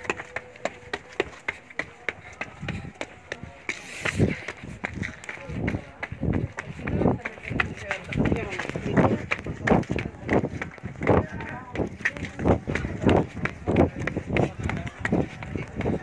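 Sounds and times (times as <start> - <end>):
footfalls on stone: 0.0 - 16.0.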